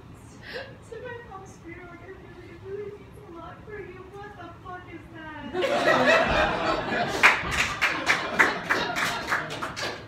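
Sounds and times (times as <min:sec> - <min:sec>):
sharp claps: 0:07.2 - 0:10.0.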